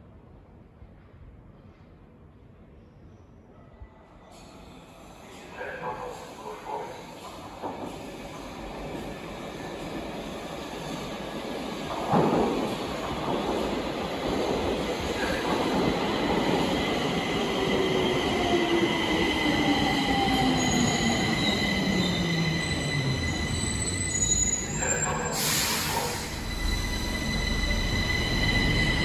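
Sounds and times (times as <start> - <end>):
metro train rumble: 3.9 - 29.0.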